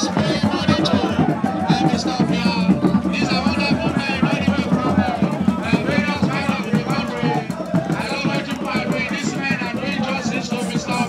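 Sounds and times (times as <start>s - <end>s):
drum and percussion groove: 0.0s - 11.0s.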